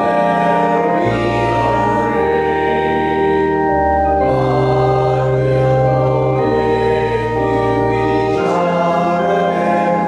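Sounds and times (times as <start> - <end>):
church organ sustained chords: 0.0 - 10.0.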